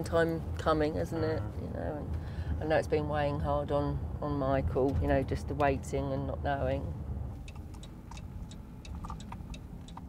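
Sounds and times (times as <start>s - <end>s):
road and engine rumble: 0.0s - 10.0s
light sharp ticks: 7.4s - 10.0s.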